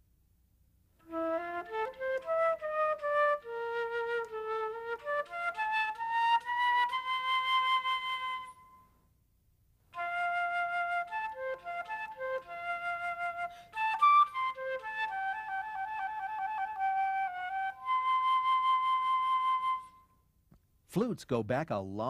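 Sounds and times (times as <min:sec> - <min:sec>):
solo flute melody: 0:01.0 - 0:09.0, 0:09.9 - 0:20.3.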